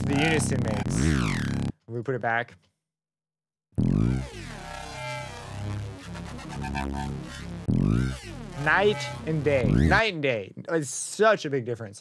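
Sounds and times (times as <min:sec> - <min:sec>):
aggressive electronic bass line: 0:00.0 - 0:01.7, 0:03.8 - 0:10.1
falling pitch sweeps: 0:03.8 - 0:10.0.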